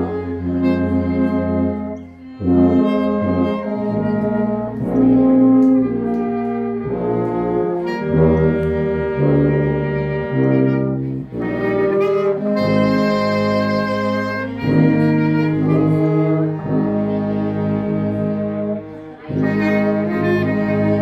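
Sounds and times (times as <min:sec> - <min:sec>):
clarinet: 0:00.0 - 0:21.0
trombone: 0:00.0 - 0:21.0
tubas: 0:00.0 - 0:21.0
violins: 0:00.0 - 0:21.0.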